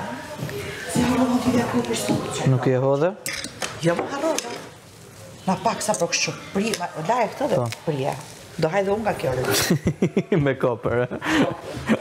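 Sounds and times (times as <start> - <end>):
woman talking: 0.0 - 2.5, 5.4 - 9.6
utensils clinking against dishes: 3.2 - 4.7, 5.8 - 6.9.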